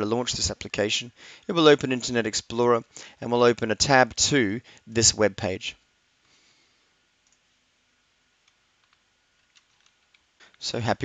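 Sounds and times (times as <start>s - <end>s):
computer mouse clicks: 7.2s - 7.4s, 8.4s - 10.6s.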